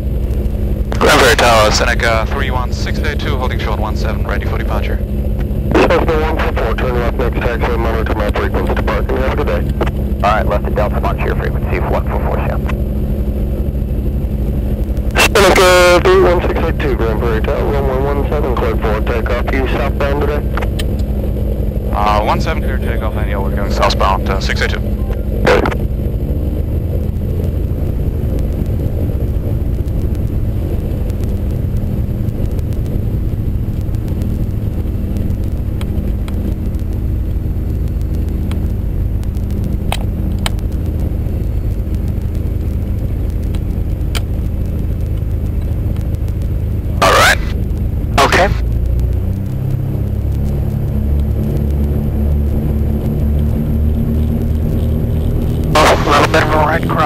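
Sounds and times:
twin piston aircraft engines: 0:00.0 - 0:57.0.

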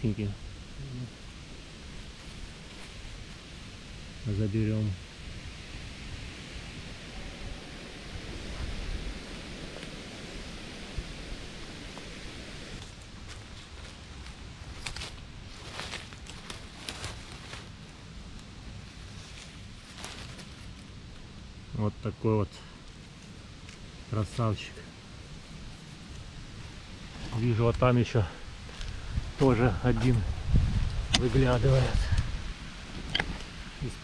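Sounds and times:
steady outdoor hiss: 0:00.0 - 0:34.0
leaves and twigs crackling underfoot: 0:01.2 - 0:04.2, 0:08.0 - 0:21.7, 0:22.8 - 0:34.0.

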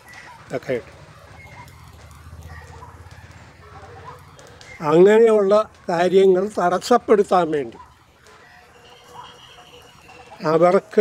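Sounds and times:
distant bird calling: 0:07.7 - 0:10.9.

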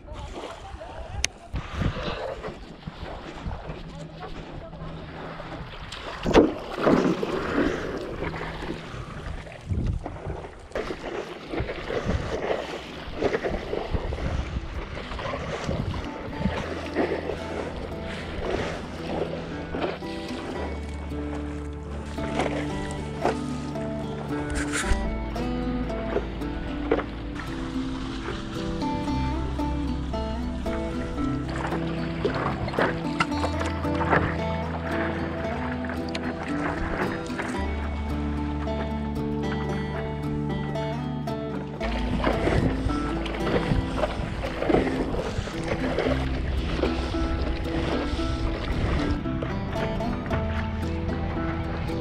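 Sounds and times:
wind on microphone: 0:00.0 - 0:20.7, 0:41.9 - 0:52.0
paddle strokes splashing: 0:00.0 - 0:52.0
music with sustained notes: 0:03.0 - 0:10.0, 0:11.9 - 0:52.0.

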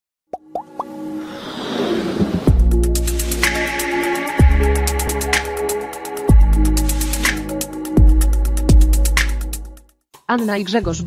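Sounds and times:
quick rising plops: 0:00.4 - 0:02.6
whoosh: 0:01.2 - 0:03.6.

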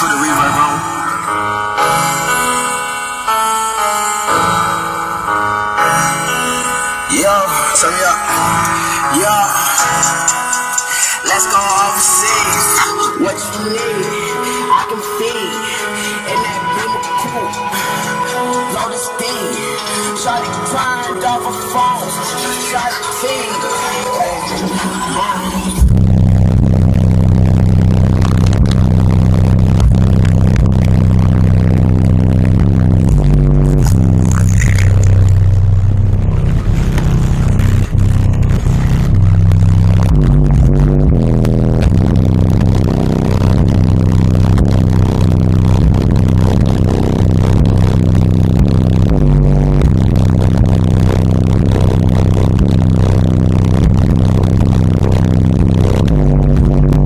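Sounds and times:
bass-heavy rap music from subwoofers: 0:00.0 - 0:57.0.

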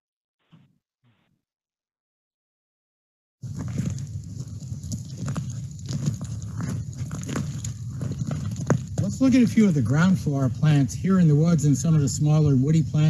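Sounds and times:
footsteps crunching on gravel: 0:03.4 - 0:10.3
steady low rumble: 0:03.4 - 0:13.0.

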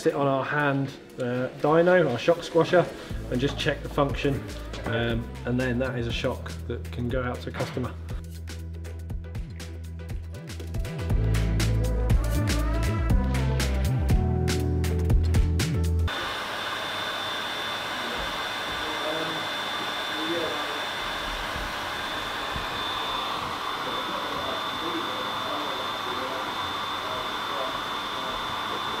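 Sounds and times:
music: 0:00.0 - 0:16.1
fan rushing noise: 0:16.1 - 0:29.0
faint high whine: 0:21.8 - 0:29.0.

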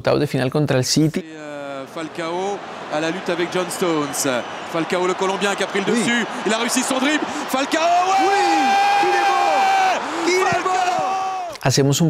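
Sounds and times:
commentator shouting goal: 0:01.2 - 0:11.6.

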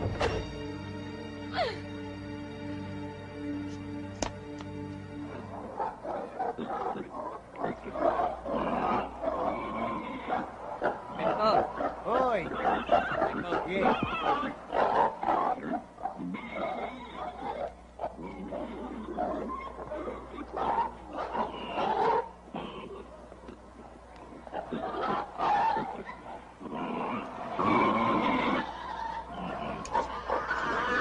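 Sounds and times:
pigs squealing and grunting: 0:05.3 - 0:31.0.

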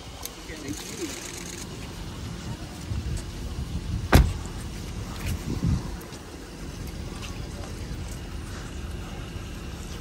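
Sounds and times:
low outdoor rumble: 0:00.0 - 0:10.0
car door closing with a thud: 0:04.0 - 0:04.5.

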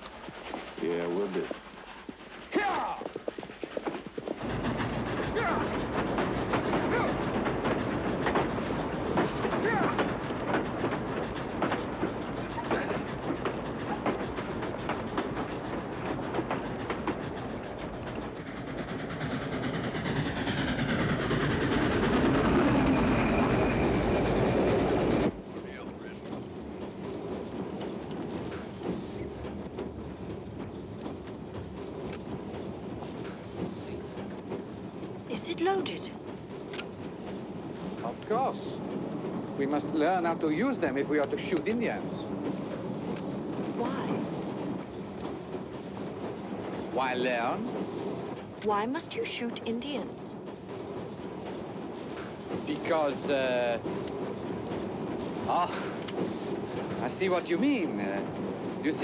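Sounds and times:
rumble inside moving railway carriage: 0:00.0 - 0:59.0
steam train clattering: 0:00.0 - 0:59.0.

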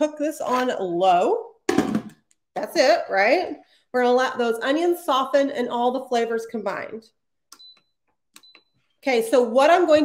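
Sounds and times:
short high beeps: 0:07.6 - 0:08.8.

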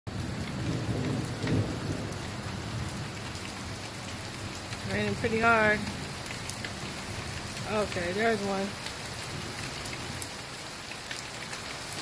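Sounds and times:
low rumble of thunder: 0:00.1 - 0:08.0
heavy rain falling: 0:00.1 - 0:12.0.

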